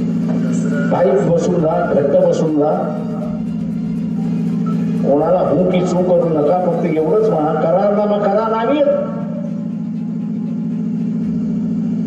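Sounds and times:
low-pitched buzzing hum: 0.0 - 12.0.

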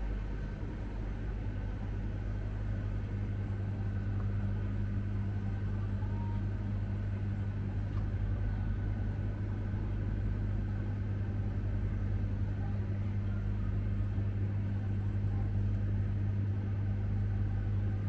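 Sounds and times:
refrigerated chiller humming: 0.0 - 18.0.

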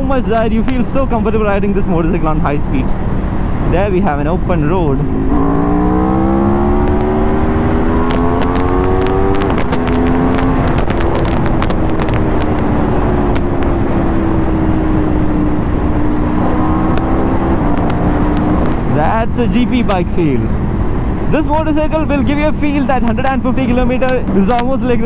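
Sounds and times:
wind rush on microphone: 0.0 - 25.0
motorcycle engine revving: 4.5 - 19.9
sharp exhaust pops: 6.7 - 14.4, 16.8 - 18.9.

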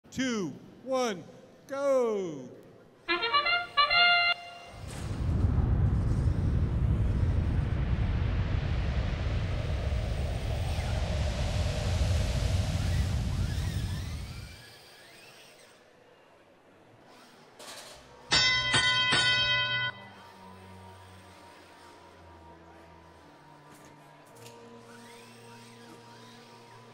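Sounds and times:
bright horn-like tone: 3.1 - 4.8
loud low rumbling whoosh: 4.7 - 14.6.

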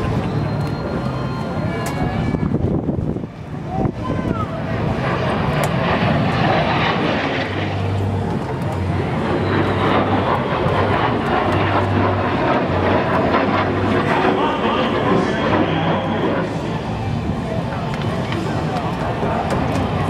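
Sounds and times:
jet flying past: 0.0 - 20.0.

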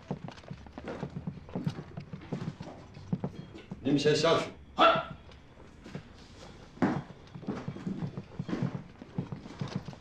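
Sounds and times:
footsteps on hard floor: 5.8 - 10.0.

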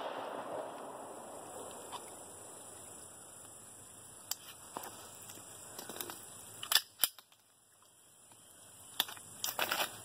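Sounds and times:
pistol shots: 0.0 - 1.1.

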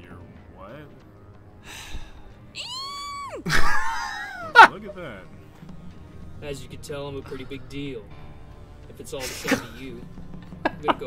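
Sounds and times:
breathy sigh: 1.6 - 3.3.

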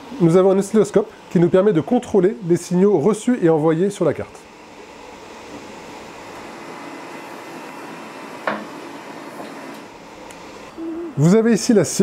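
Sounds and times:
lab equipment humming: 0.0 - 12.0.

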